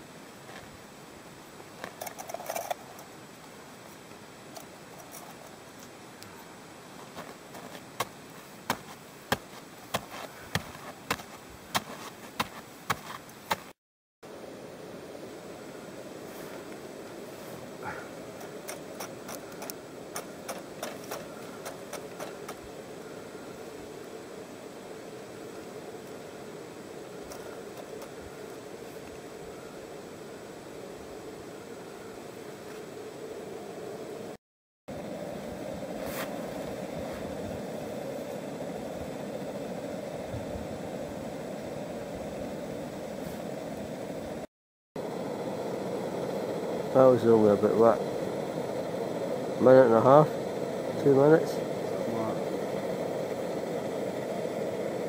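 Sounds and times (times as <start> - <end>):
gas stove burner hissing: 0.0 - 13.6, 14.5 - 55.0
snow crunching: 6.3 - 13.8, 16.1 - 24.0, 35.8 - 42.4, 43.0 - 43.9.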